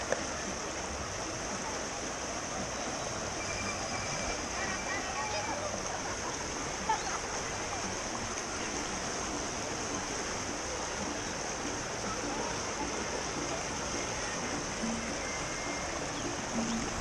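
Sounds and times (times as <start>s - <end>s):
faint background music: 0.0s - 17.0s
river rapids rushing over rocks: 0.0s - 17.0s.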